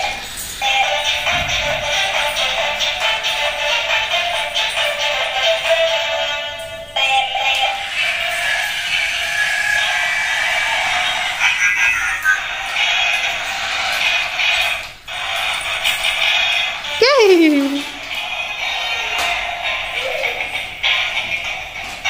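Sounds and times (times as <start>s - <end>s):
toy electronic sound effects: 17.0s - 17.9s.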